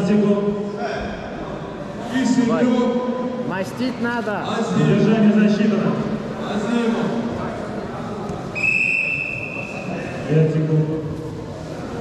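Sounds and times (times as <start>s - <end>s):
faint echoing voices: 0.0s - 12.0s
referee whistle blast: 8.6s - 9.9s.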